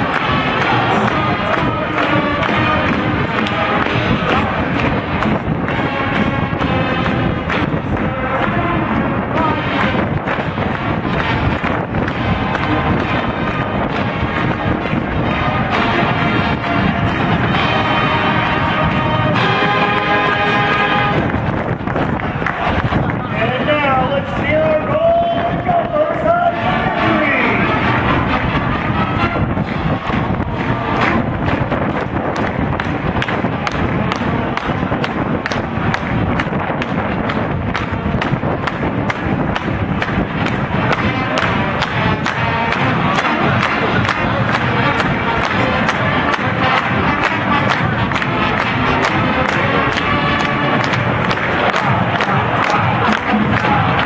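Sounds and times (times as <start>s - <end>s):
drumline steady beat: 0.0s - 23.7s, 27.4s - 54.0s
crowd noise: 0.0s - 54.0s
marching band brass: 0.0s - 54.0s.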